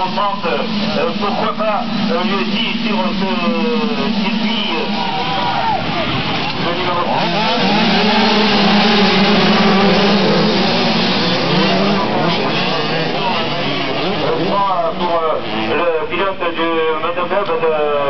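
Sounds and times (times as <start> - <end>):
motocross bikes revving: 0.0 - 17.4.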